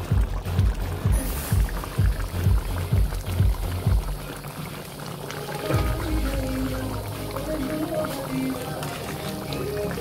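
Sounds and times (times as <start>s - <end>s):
background music: 0.0s - 10.0s
stew bubbling in a pot: 0.0s - 10.0s.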